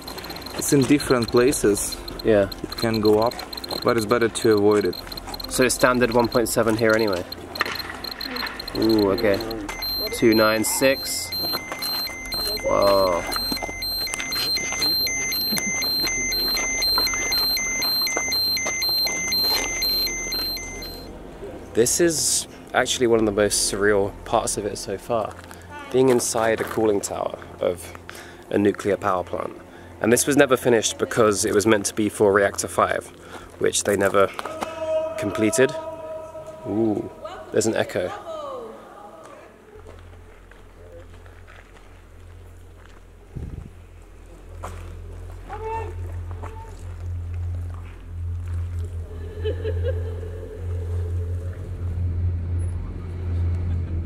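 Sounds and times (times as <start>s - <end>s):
dosimeter alarm two-tone beeps: 0.0s - 21.1s.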